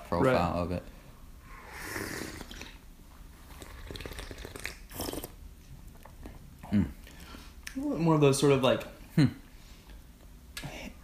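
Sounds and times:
tea slurping: 1.7s - 2.8s, 3.4s - 5.4s.

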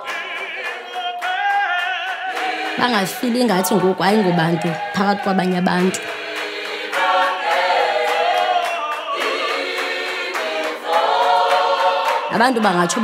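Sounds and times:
group singing in harmony: 0.0s - 13.0s.

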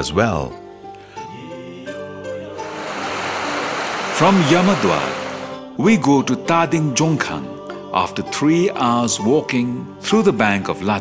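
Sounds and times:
background music with held notes: 0.0s - 11.0s
river rushing over rocks: 2.6s - 5.6s.

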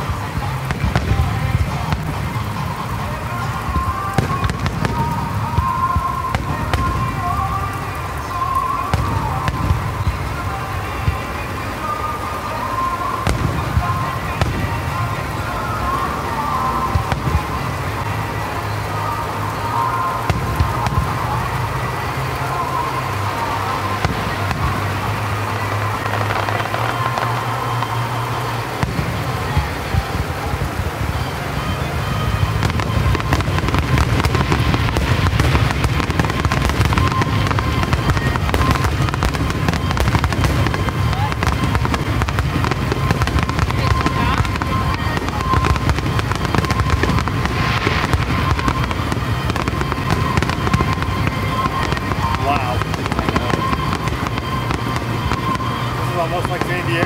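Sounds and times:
fireworks bangs and crackles: 0.0s - 57.0s.

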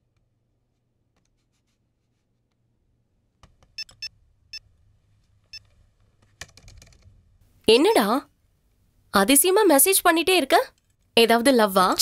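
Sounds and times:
laptop keys typing clicks: 6.3s - 7.1s.

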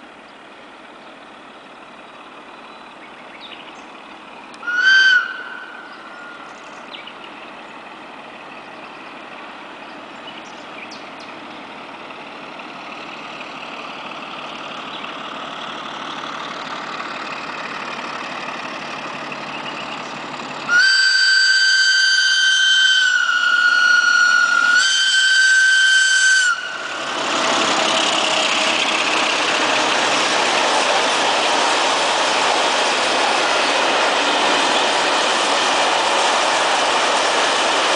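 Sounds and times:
diesel locomotive engine: 0.0s - 37.9s
train wagons rolling past: 0.0s - 37.9s
high-pitched train whistle: 4.6s - 6.4s, 20.7s - 27.0s.

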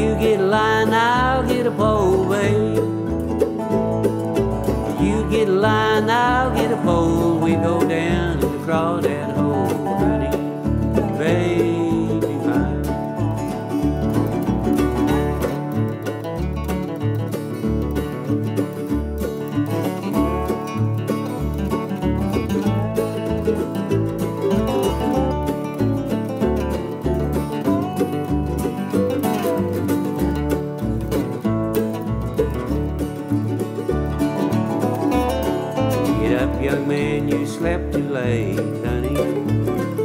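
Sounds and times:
bass notes: 0.0s - 40.0s
picked acoustic strings: 0.0s - 40.0s.

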